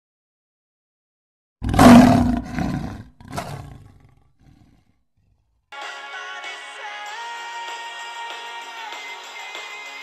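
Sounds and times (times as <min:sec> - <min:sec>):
big cat roaring: 0:01.6 - 0:04.7
music: 0:05.7 - 0:10.0.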